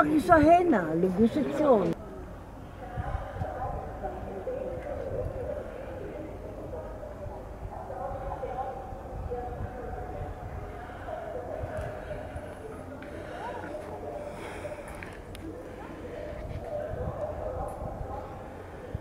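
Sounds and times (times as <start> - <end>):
people talking in background: 0.0 - 19.0.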